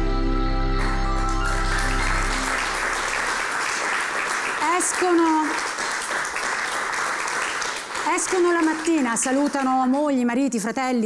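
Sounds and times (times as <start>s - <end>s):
theme music: 0.0s - 3.7s
studio audience applauding: 0.8s - 10.2s.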